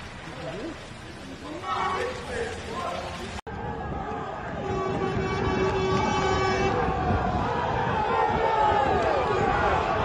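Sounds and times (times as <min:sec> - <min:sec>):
horn long steady note: 0:04.5 - 0:07.1.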